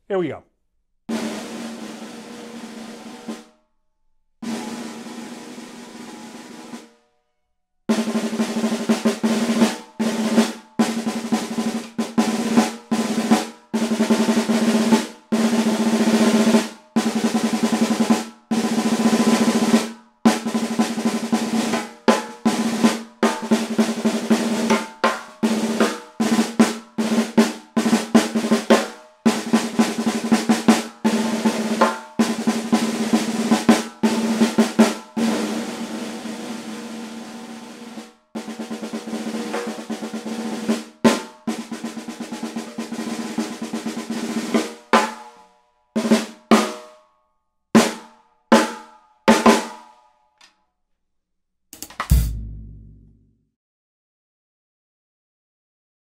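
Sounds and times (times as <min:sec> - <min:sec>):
ringing drum tone: 0:51.8 - 0:53.2
snare drum rolls: 0:51.8 - 0:53.2.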